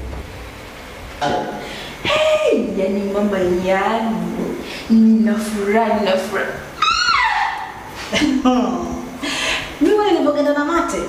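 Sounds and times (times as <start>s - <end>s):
woman exclaiming and speaking: 1.2s - 4.0s
high-pitched cry: 6.8s - 7.9s.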